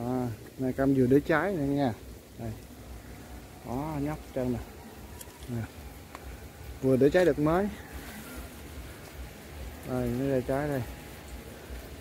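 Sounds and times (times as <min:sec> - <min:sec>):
man speaking: 0:00.0 - 0:02.6, 0:03.5 - 0:04.8, 0:05.4 - 0:05.8, 0:06.7 - 0:08.0, 0:09.8 - 0:11.0
faint steady buzz: 0:00.0 - 0:12.0.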